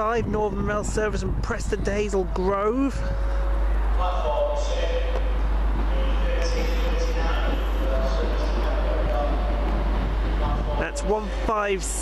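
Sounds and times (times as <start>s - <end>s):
diesel train engine approaching: 0.0s - 12.0s
faint wavering tones: 2.3s - 8.8s.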